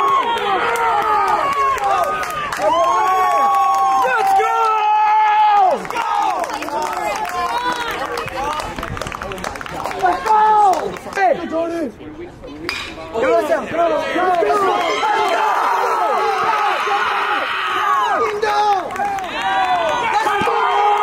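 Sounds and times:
players yelling and cheering: 0.0 - 12.0, 13.0 - 21.0.

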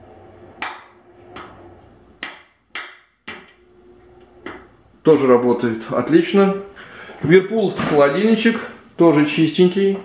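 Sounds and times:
range hood fan humming: 0.0 - 10.0.

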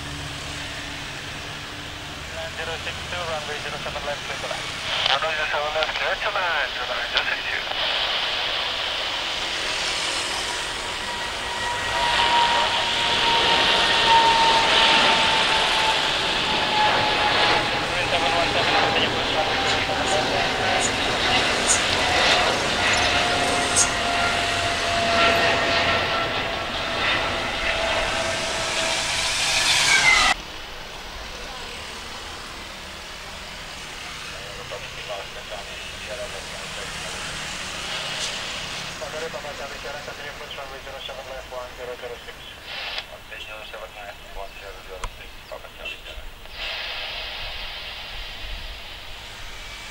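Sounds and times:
jet engines roaring: 0.0 - 49.9
airport background: 1.6 - 49.6.

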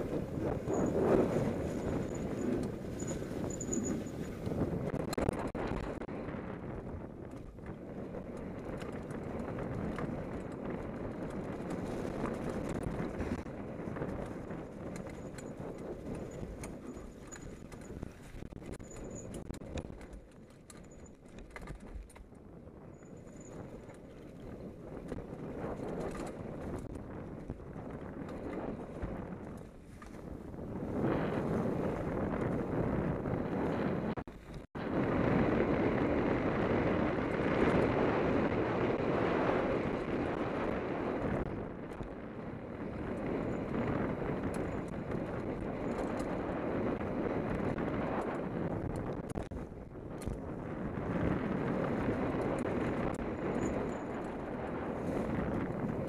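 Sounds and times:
bike tyre roar on dirt: 0.0 - 56.0
wind on microphone: 0.0 - 56.0.

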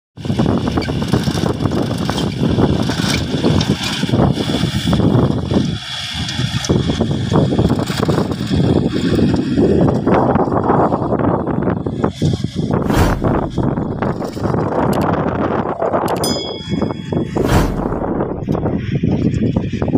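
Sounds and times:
wind buffeting microphone: 0.2 - 19.9
tractor engine under load: 0.3 - 9.9.

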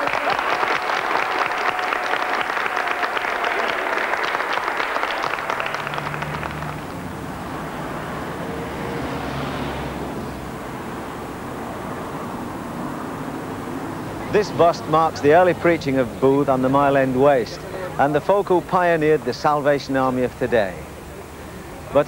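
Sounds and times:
audience applauding: 0.0 - 7.9
cars passing: 0.0 - 22.0
low engine rumble: 3.5 - 22.0.

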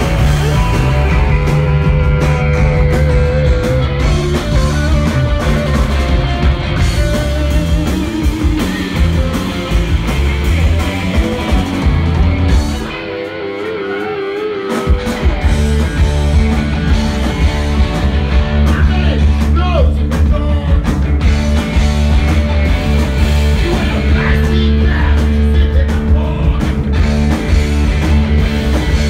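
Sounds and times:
bass guitar: 0.0 - 29.0
drums: 0.0 - 29.0
electric guitar: 0.0 - 29.0.

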